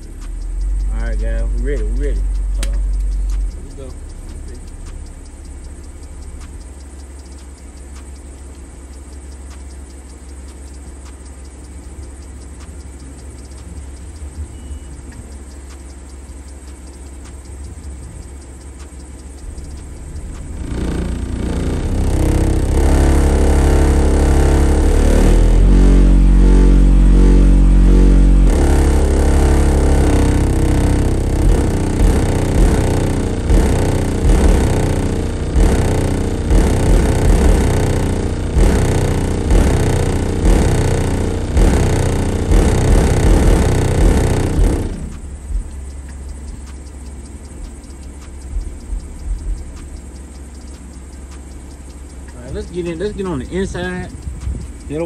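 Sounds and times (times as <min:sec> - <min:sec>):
bass-heavy music from car subwoofer: 0:00.0 - 0:55.0.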